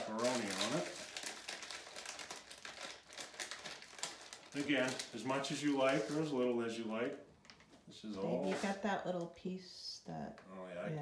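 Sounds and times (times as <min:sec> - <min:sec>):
plastic package crinkling: 0:00.0 - 0:07.7.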